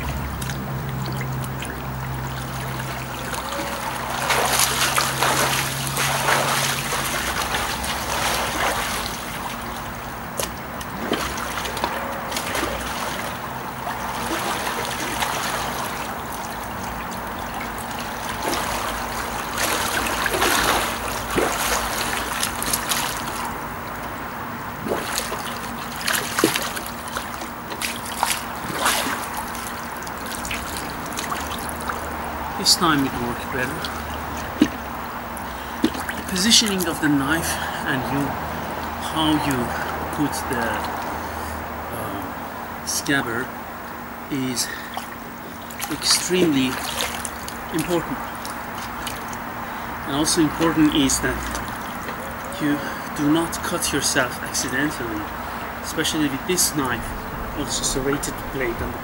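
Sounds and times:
steady low hum: 0.0 - 59.0
water splashing in a pool: 0.0 - 59.0.

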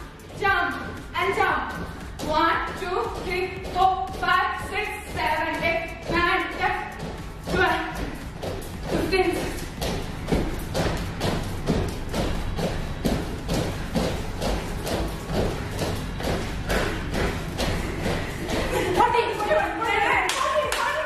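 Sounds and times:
workout music: 0.0 - 21.0.

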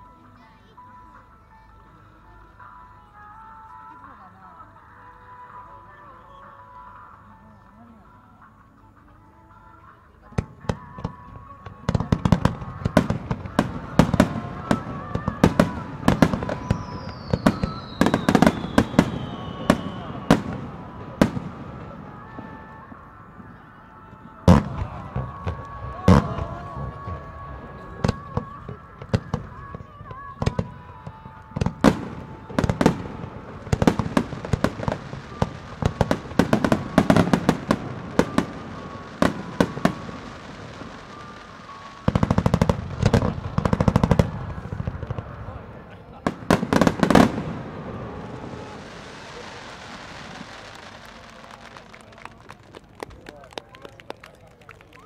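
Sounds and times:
music from loudspeakers: 0.0 - 45.4
fireworks bangs and crackles: 10.3 - 55.0
falling firework whistle: 13.0 - 30.8, 31.6 - 45.3, 46.2 - 52.3.

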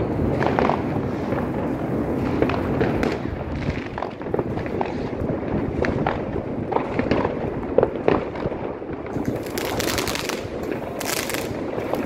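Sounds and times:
distant fireworks rumble: 0.0 - 12.0
firecrackers cracking: 0.0 - 12.0.

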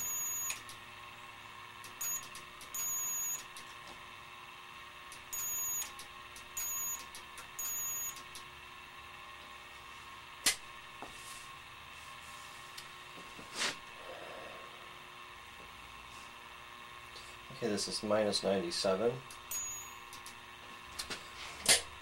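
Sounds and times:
high-pitched electrical whine: 0.0 - 0.8, 1.8 - 3.7, 5.1 - 8.4, 17.5 - 21.0
faint electrical hum: 0.0 - 22.0.

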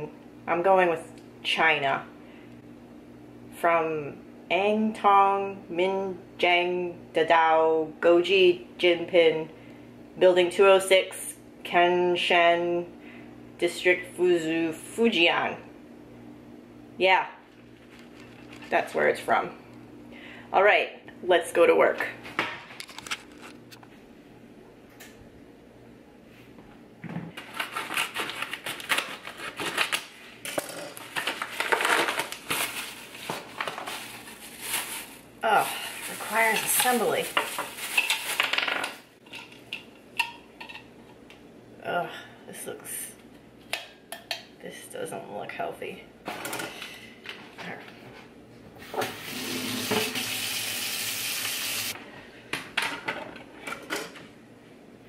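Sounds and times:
plastic package crinkling: 22.8 - 23.8, 31.0 - 39.1
kitchen tap running: 48.8 - 52.0.

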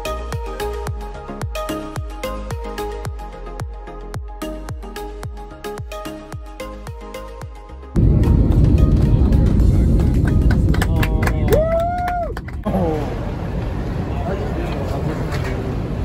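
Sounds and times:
airliner cabin roar: 8.0 - 16.0
vehicle noise: 8.0 - 16.0
people talking: 10.6 - 11.8, 12.6 - 16.0.

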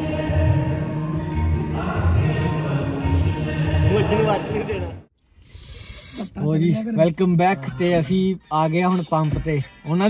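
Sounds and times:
background music: 0.0 - 5.1, 7.0 - 10.0.

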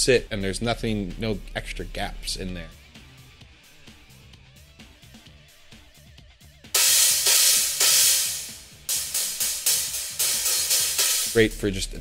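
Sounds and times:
faint background music: 0.0 - 12.0
stacked crash cymbals: 6.8 - 11.9.

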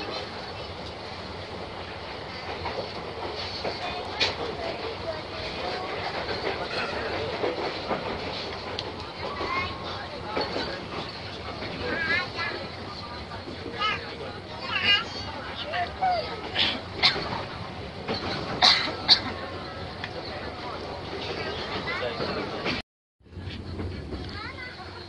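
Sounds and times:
train wheels clicking: 0.0 - 22.8
train carriage running on track: 0.0 - 25.0
voices on a platform: 0.0 - 25.0.

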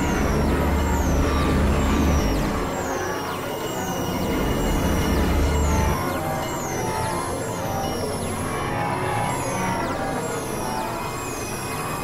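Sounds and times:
deep rumbling low drone: 0.0 - 2.8, 4.2 - 6.0
dense noisy synthesizer texture: 0.0 - 7.3.

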